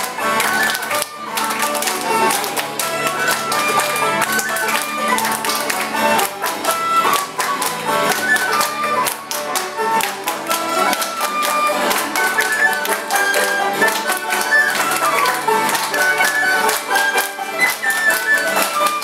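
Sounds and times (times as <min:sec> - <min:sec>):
folk tune on acoustic guitar: 0:00.0 - 0:19.0
many hands clapping: 0:00.0 - 0:19.0.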